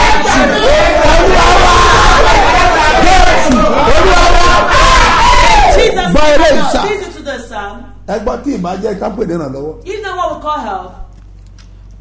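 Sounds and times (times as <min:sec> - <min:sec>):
crowd shouting in prayer: 0:00.0 - 0:06.9.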